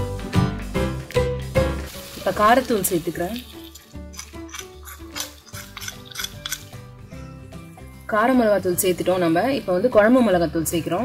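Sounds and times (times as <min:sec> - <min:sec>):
soft background music: 0:00.0 - 0:11.0
metal spoon scraping clay bowl: 0:03.4 - 0:06.7.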